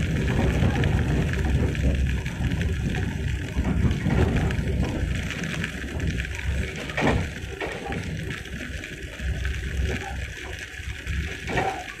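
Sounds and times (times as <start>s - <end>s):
train rumble and hiss: 0.0s - 12.0s.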